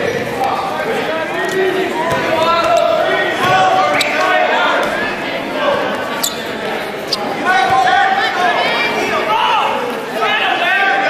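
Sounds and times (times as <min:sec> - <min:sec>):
spectators' voices echoing: 0:00.0 - 0:11.0
shoes squeaking on mat: 0:02.1 - 0:04.4, 0:05.8 - 0:07.8.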